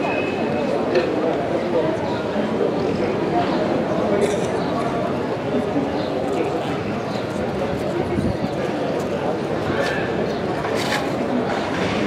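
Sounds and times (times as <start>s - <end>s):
noisy background: 0.0s - 12.0s
people talking indistinctly: 0.1s - 11.7s.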